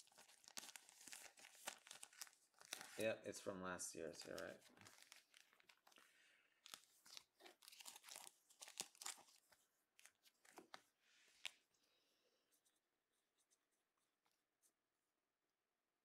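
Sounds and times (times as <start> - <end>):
plastic sleeves crinkling: 0.0 - 11.7.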